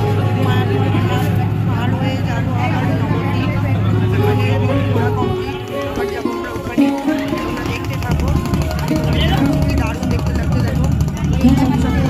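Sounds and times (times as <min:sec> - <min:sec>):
boat engine drone: 0:00.0 - 0:12.0
voices talking: 0:00.0 - 0:12.0.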